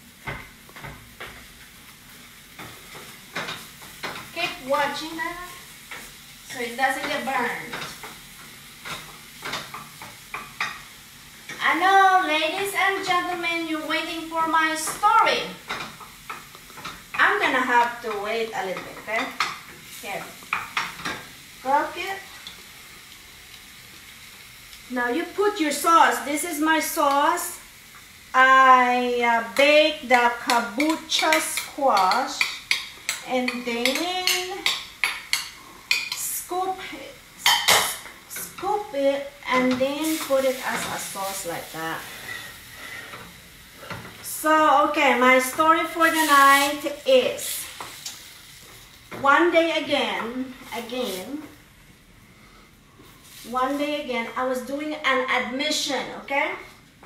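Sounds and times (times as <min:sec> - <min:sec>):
tofu sizzling in a skillet: 0:00.0 - 0:56.0
spatula scraping a skillet: 0:30.2 - 0:38.8, 0:39.6 - 0:44.2, 0:45.5 - 0:48.8.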